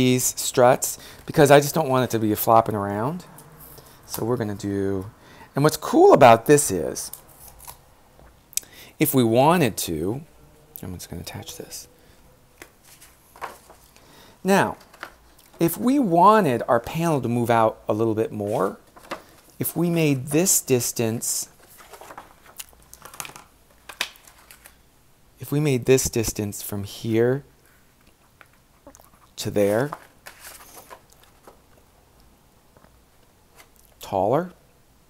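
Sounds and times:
cardstock rustling: 0:12.6 - 0:15.8, 0:18.4 - 0:19.7, 0:21.6 - 0:24.8, 0:29.6 - 0:31.6.

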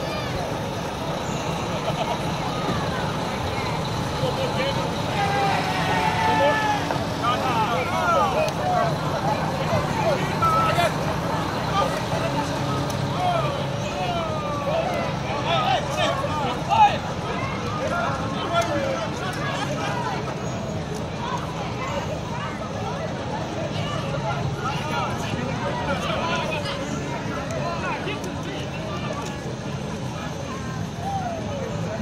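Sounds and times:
heavy truck engine running: 0:00.0 - 0:32.0
people calling out and chattering: 0:00.0 - 0:32.0.

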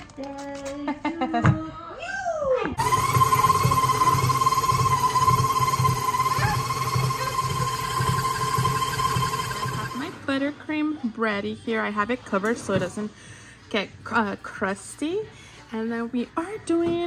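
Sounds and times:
stand mixer motor whine: 0:02.8 - 0:10.4.

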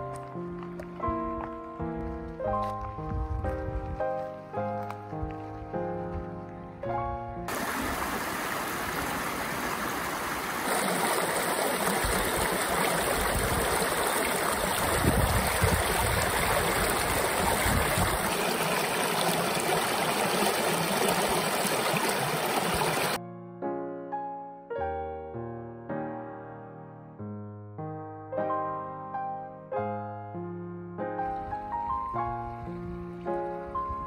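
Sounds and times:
piano music: 0:00.0 - 0:07.6, 0:23.2 - 0:34.0
creek water rushing over rocks: 0:07.5 - 0:23.2.

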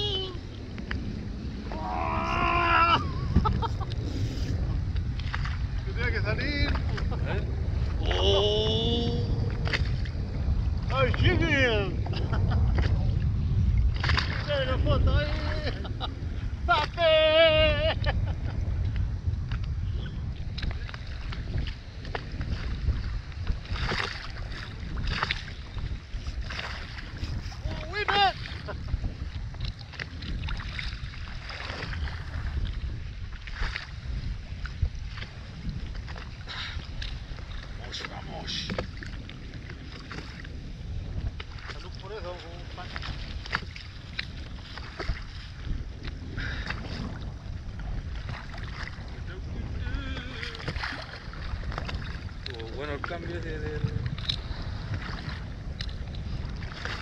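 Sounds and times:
water slapping against hull: 0:00.0 - 0:57.0
wind rumbling on microphone: 0:00.0 - 0:57.0.

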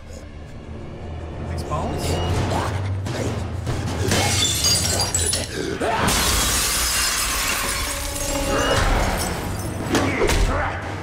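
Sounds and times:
dramatic music score: 0:00.0 - 0:06.5, 0:07.6 - 0:11.0
glass shattering and crashing: 0:04.1 - 0:09.9.

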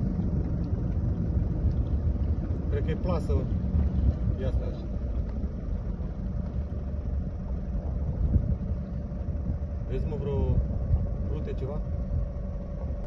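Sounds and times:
boat engine running slowly: 0:00.0 - 0:13.0
faint steady hum: 0:00.0 - 0:13.0.

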